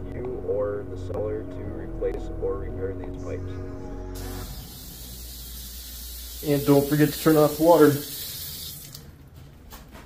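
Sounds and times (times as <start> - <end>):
faucet water running into sink: 4.4 - 9.0.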